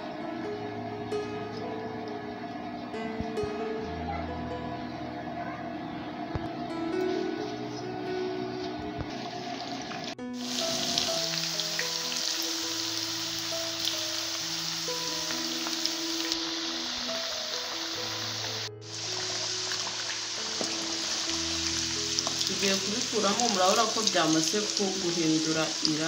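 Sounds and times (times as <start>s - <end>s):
music with long held notes: 0.0s - 26.0s
potatoes sizzling in hot oil: 9.8s - 26.0s.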